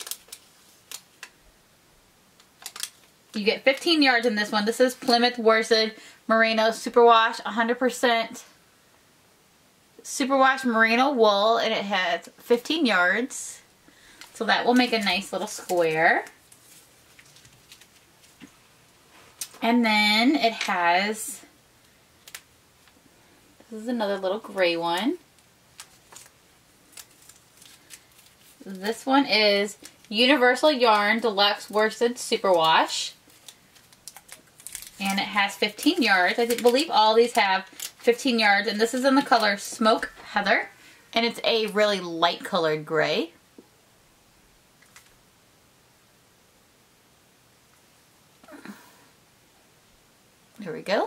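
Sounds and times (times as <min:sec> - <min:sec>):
paper label crinkling: 0:00.0 - 0:01.4, 0:02.4 - 0:04.3, 0:14.2 - 0:18.5, 0:24.5 - 0:40.2.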